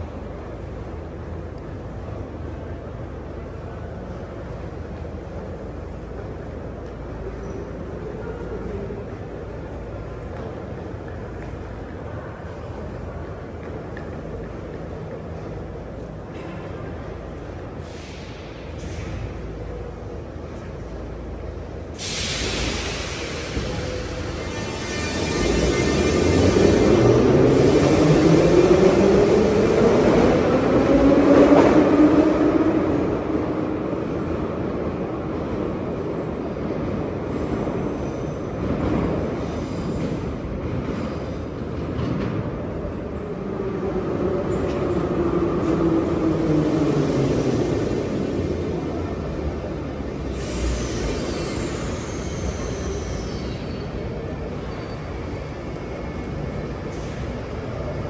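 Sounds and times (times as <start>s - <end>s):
brake squeal: 22.0s - 28.2s, 50.2s - 55.4s
train motor whining: 23.5s - 27.1s.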